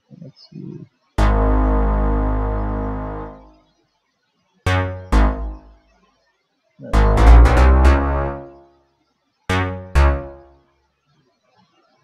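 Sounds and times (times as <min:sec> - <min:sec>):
synth bass notes: 0:01.2 - 0:03.5, 0:04.7 - 0:05.8, 0:06.8 - 0:08.6, 0:09.5 - 0:10.5.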